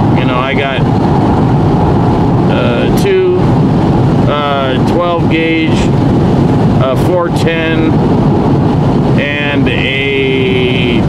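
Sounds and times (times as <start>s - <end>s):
car road and engine noise: 0.0s - 11.0s
man speaking: 0.2s - 0.8s, 2.5s - 3.5s, 4.3s - 5.9s, 6.8s - 8.0s, 9.2s - 11.0s.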